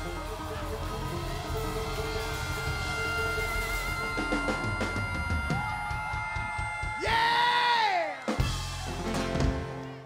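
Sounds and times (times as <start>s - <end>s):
country-rock band playing: 0.0s - 7.1s, 8.1s - 10.0s.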